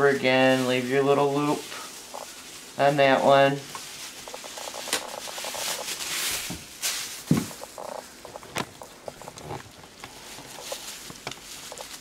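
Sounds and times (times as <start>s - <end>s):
plastic bags rustling and crinkling: 0.0s - 12.0s.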